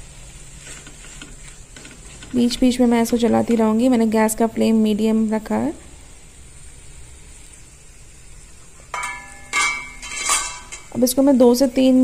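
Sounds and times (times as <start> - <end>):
chicken sizzling in frying pan: 0.0 - 12.0
metallic kitchenware clinks: 9.0 - 11.0.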